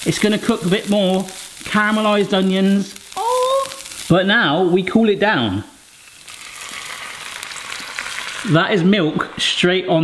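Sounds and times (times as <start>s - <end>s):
sizzling in frying pan: 0.0s - 10.0s
milk pouring into pan: 5.8s - 9.4s.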